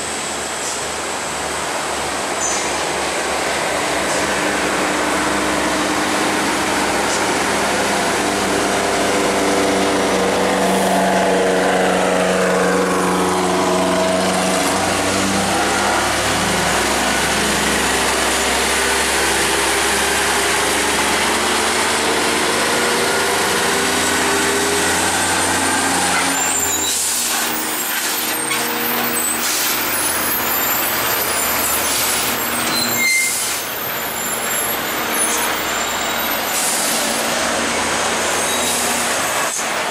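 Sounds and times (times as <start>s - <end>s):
truck diesel engine labouring: 0.0s - 39.9s.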